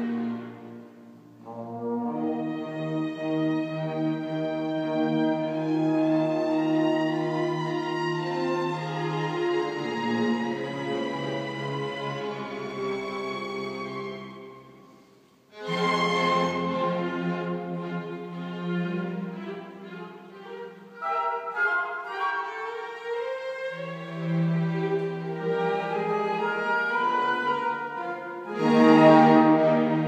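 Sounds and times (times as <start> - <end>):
string orchestra playing: 0.0 - 30.0.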